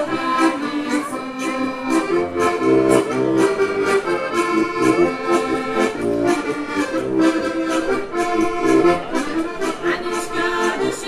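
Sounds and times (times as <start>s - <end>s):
button accordion playing folk tune: 0.0s - 11.0s.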